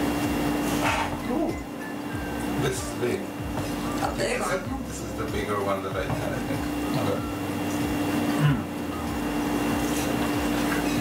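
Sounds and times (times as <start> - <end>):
low mechanical room hum: 0.0 - 11.0.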